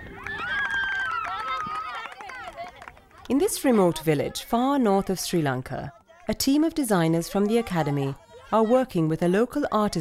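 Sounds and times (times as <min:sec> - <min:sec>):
children shouting: 0:00.0 - 0:02.8, 0:07.3 - 0:09.1.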